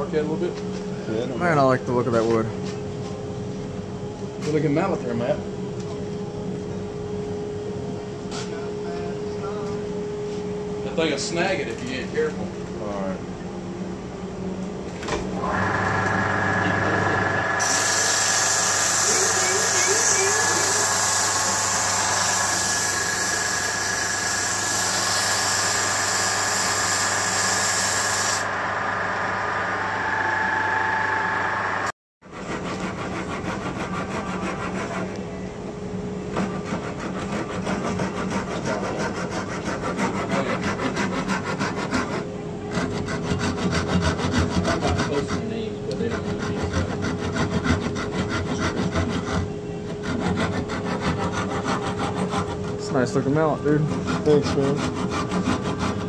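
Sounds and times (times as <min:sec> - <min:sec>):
wood lathe running: 0:15.4 - 0:31.9
hand saw cutting wood: 0:17.6 - 0:28.4, 0:32.4 - 0:35.2, 0:36.4 - 0:52.9, 0:53.6 - 0:56.0.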